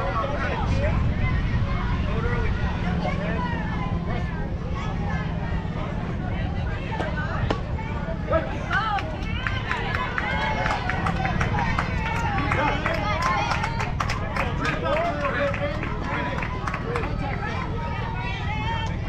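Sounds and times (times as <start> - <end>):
crowd shouting and cheering: 0.0 - 19.0
people clapping: 8.5 - 19.0.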